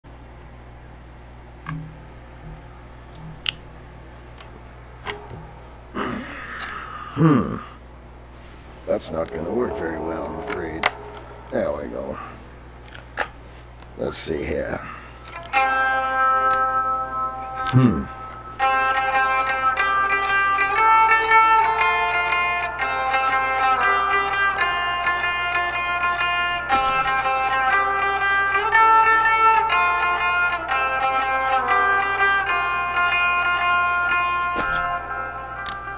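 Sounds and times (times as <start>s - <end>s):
low electrical hum: 0.1s - 35.9s
clean electric guitar picking: 1.6s - 6.8s, 8.8s - 13.2s, 15.2s - 35.9s.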